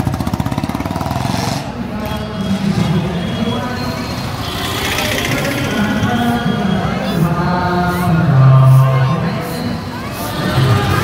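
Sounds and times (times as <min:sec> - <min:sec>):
engine pulsing: 0:00.0 - 0:11.0
street voices: 0:00.0 - 0:11.0.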